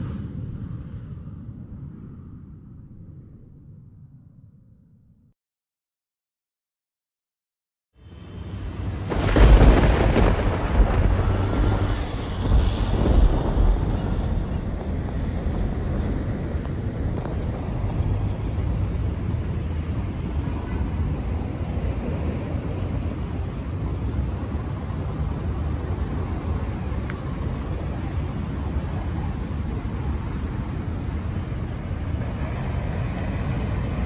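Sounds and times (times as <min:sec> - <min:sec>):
wind buffeting microphone: 0:08.4 - 0:34.0.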